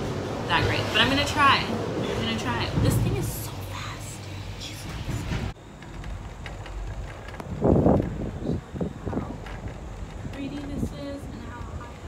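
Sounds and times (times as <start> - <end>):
gondola cabin rumbling on cable: 0.5 - 3.9, 4.6 - 12.0.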